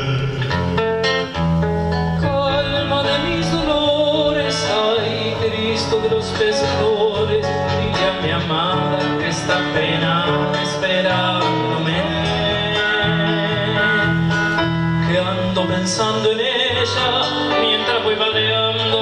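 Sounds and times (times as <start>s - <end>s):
man singing: 0.0s - 1.4s, 2.0s - 19.0s
acoustic guitar: 0.0s - 19.0s
keyboard: 0.0s - 19.0s.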